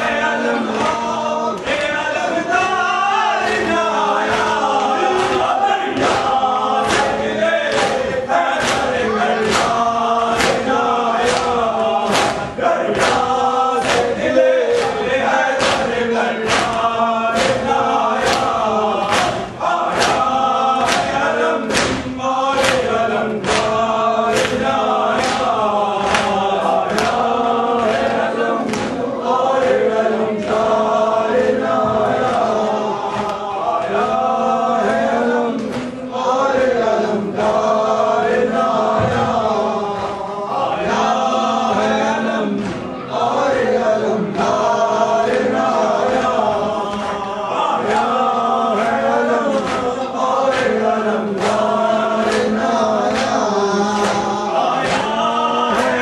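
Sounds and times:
men chanting a lament: 0.0s - 56.0s
chest-beating slaps: 3.4s - 56.0s.

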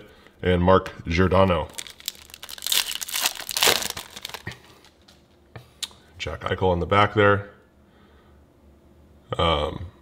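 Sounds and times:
foil wrapper crinkling: 1.7s - 5.4s.

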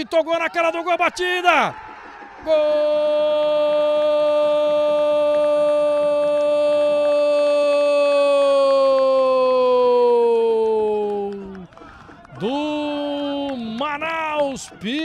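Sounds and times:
man talking: 0.0s - 1.8s, 12.4s - 15.0s.

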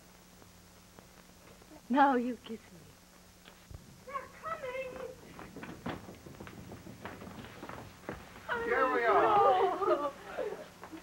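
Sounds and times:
faint footsteps on floor: 0.1s - 1.8s, 4.7s - 8.8s
women exclaiming excitedly: 8.5s - 10.6s.

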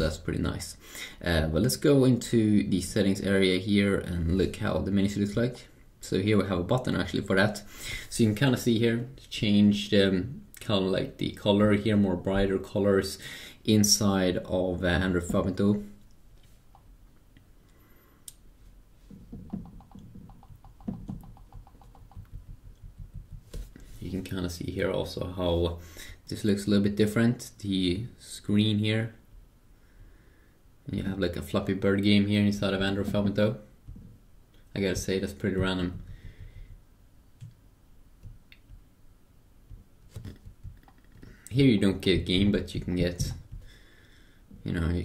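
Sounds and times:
fingertip taps on touchscreen: 19.1s - 23.7s.

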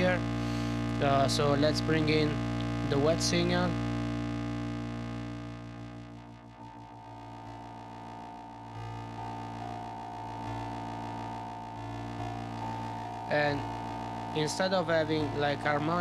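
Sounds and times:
pitch-shifted synth tones: 0.0s - 16.0s
synth drone: 0.0s - 16.0s.

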